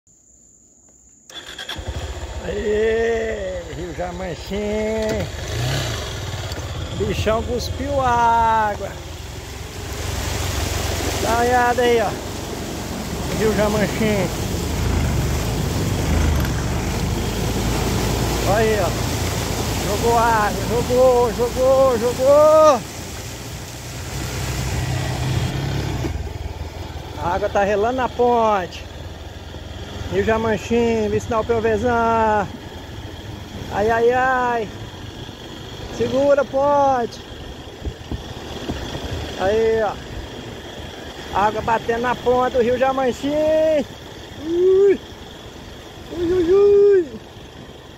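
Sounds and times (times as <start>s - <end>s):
high-pitched insect drone: 0.1s - 47.9s
dirt bike engine: 1.3s - 47.9s.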